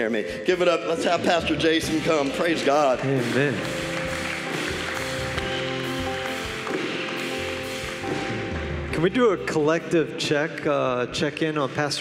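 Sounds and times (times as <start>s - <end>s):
keyboard sustained chords: 0.0s - 11.9s
electric guitar chords: 1.9s - 10.3s.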